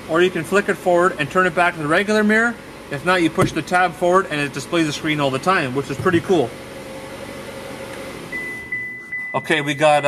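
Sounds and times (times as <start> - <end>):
car engine idling: 0.0 - 7.0
thin high tone: 8.3 - 10.0.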